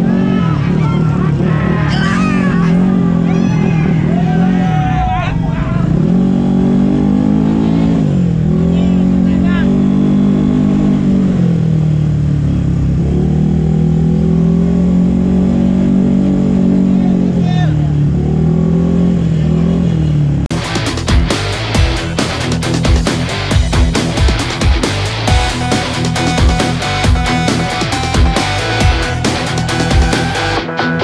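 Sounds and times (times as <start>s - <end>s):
music: 20.5s - 31.0s.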